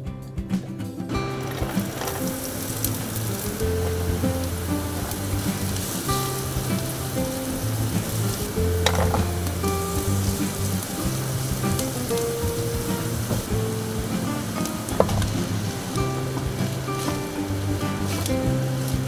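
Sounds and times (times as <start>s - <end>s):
background music with held notes: 0.0s - 19.0s
onions sizzling in hot oil: 1.4s - 19.0s.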